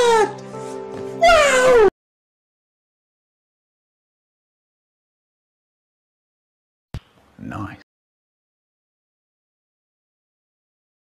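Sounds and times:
background music chord: 0.0 - 1.8
high-pitched wailing cries: 1.2 - 1.9.

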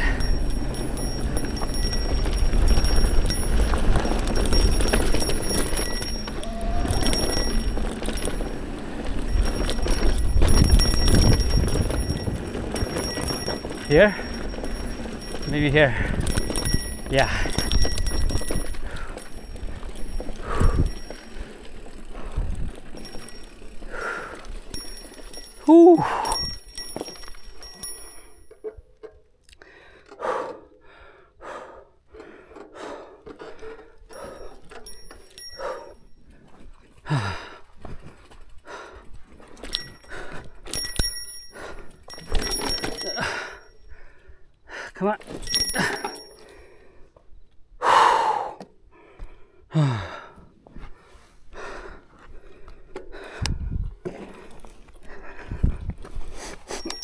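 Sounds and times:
person panting and sighing: 0.0 - 0.5, 15.9 - 16.4, 20.4 - 21.2, 23.8 - 24.6, 25.6 - 26.6, 29.5 - 34.8, 35.5 - 38.0, 43.0 - 47.2, 47.8 - 57.0.

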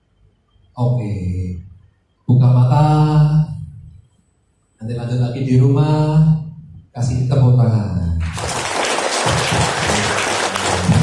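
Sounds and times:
audience applauding: 8.2 - 11.0.

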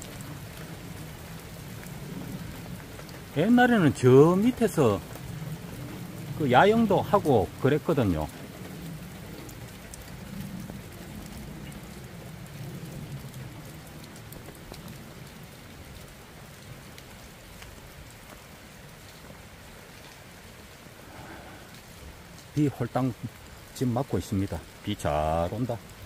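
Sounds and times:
rain falling: 0.0 - 26.0.

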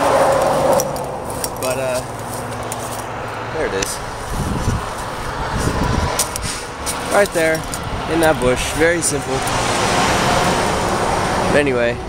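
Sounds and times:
freeway traffic rumble: 0.0 - 12.0.

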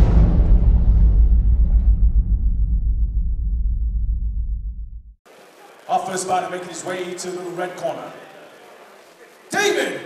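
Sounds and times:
deep boom with rumble: 0.0 - 5.1.

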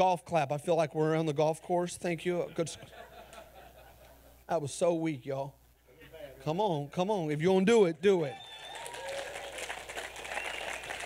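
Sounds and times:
congregation applauding: 8.4 - 11.0.

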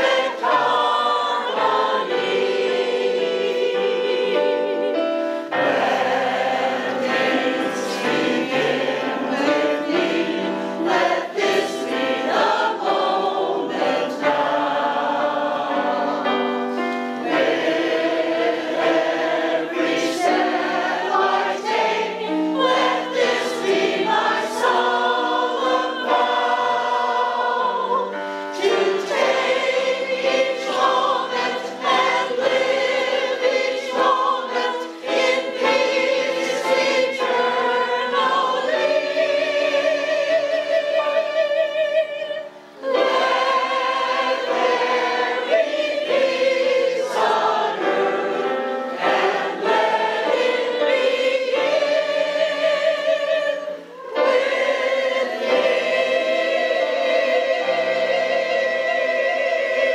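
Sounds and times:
choir singing in harmony: 0.0 - 59.9
digital piano: 0.0 - 59.9.

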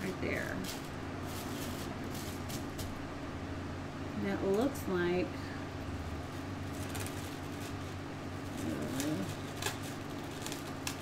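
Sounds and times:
plastic cling wrap crinkling: 0.0 - 3.0, 6.2 - 11.0
low background hum: 0.0 - 11.0.

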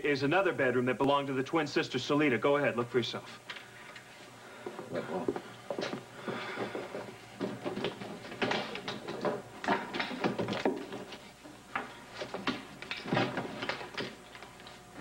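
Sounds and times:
objects knocking and clattering: 4.7 - 14.2.

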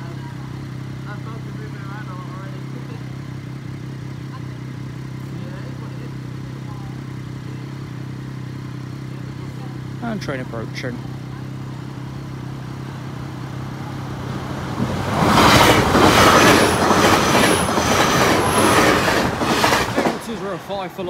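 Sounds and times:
train passing: 11.2 - 21.0
wheels clacking on rails: 11.2 - 21.0.

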